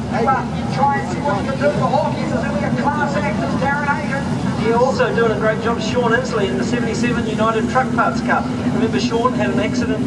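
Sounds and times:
race car engines rumbling: 0:00.0 - 0:10.0.

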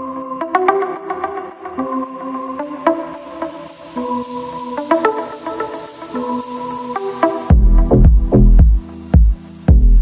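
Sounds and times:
sustained synth chords: 0:00.0 - 0:10.0.

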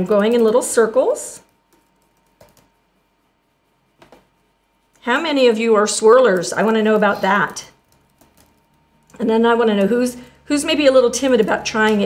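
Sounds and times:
stencil brush scuffs: 0:00.4 - 0:08.7.

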